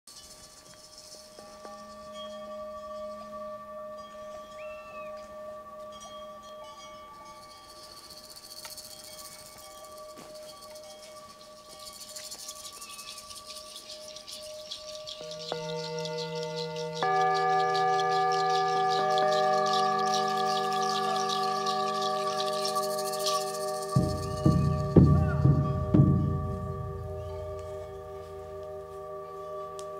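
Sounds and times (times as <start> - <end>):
high shimmer: 0.1 - 29.9
gongs ringing: 15.2 - 29.9.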